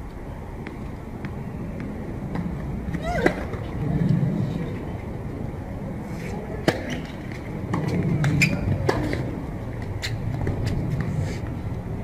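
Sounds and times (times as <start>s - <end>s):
traffic: 0.0s - 12.0s
tennis ball bouncing on court: 0.6s - 3.7s, 6.6s - 11.1s
racket hitting ball: 6.3s - 9.4s.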